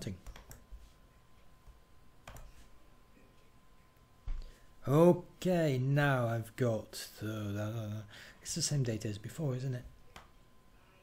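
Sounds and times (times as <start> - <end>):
keyboard and mouse clicks: 0.2 - 0.6, 2.2 - 2.5.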